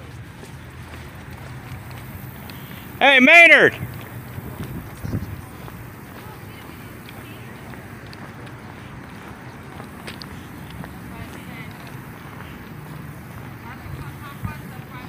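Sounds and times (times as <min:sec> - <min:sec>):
outdoor background noise: 0:00.0 - 0:15.0.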